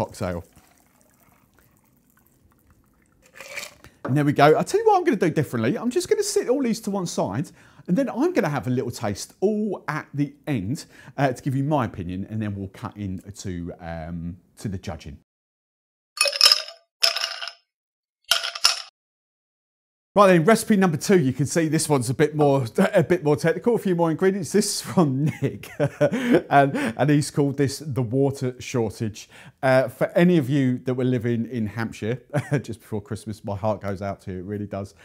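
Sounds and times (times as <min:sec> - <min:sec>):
light drips: 0:00.0 - 0:04.0
liquid trickling into glass of ice: 0:00.2 - 0:04.0
short bursts of clinking: 0:16.2 - 0:17.6, 0:18.3 - 0:18.9.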